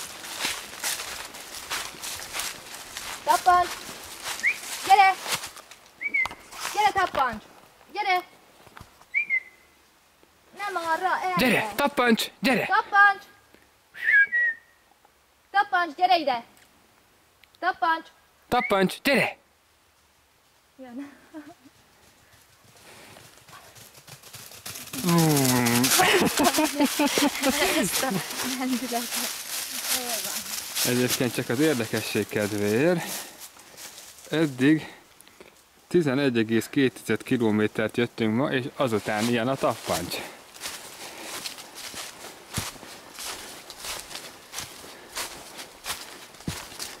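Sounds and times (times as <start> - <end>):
dog paws rustling dry leaves: 0.0 - 7.5, 22.8 - 34.6, 38.8 - 47.0.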